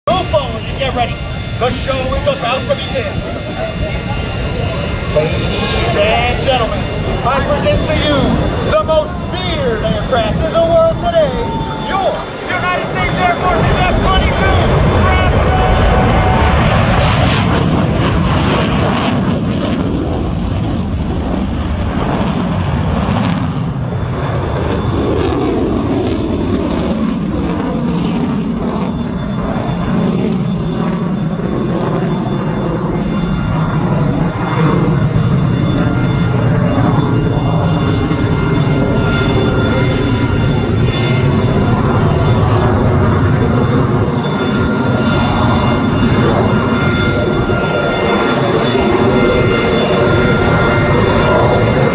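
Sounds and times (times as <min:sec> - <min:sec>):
jet engines roaring: 0:00.0 - 0:51.9.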